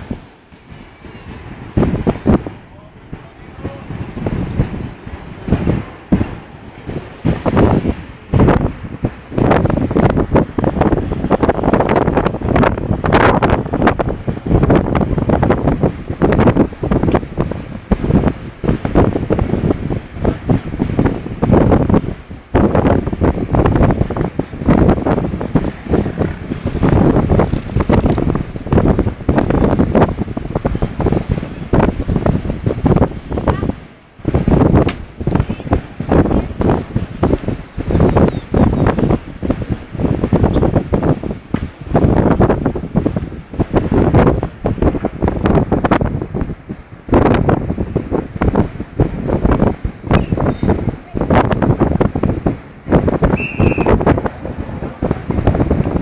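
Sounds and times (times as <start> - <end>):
ocean surf: 0.0 - 56.0
wind buffeting microphone: 0.0 - 56.0.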